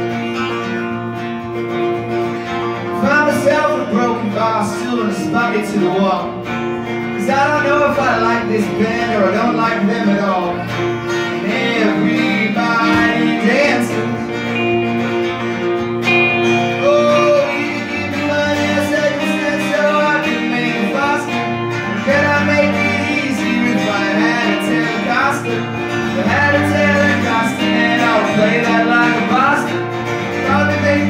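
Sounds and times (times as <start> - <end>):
acoustic guitar strumming: 0.0 - 31.0
electric guitar lead with bent notes: 0.0 - 31.0.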